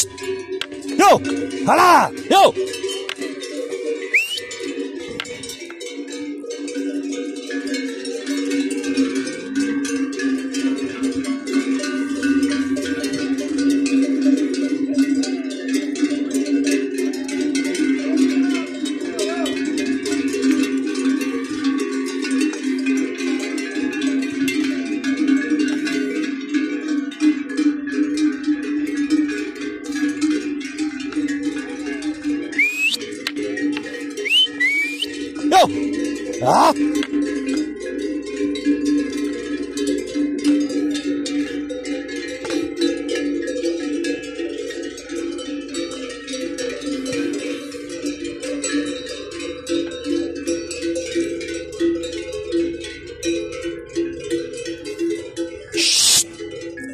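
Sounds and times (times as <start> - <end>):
cowbells clanking: 0.0 - 56.9.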